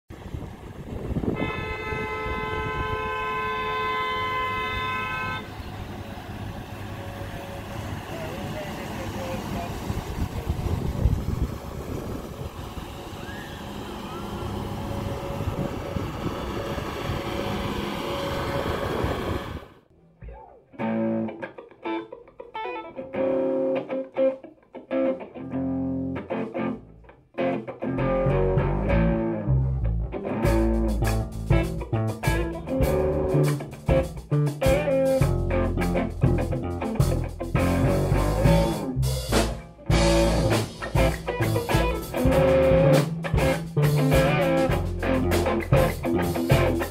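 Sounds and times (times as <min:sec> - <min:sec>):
outdoor noise: 0:00.1 - 0:23.9, 0:24.8 - 0:46.9
boat horn long note: 0:01.2 - 0:06.0
guitar music with bass: 0:13.2 - 0:46.9.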